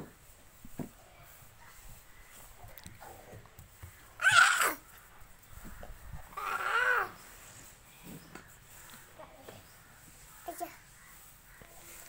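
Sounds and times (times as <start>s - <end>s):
animal calling: 4.2s - 4.8s, 6.3s - 7.2s.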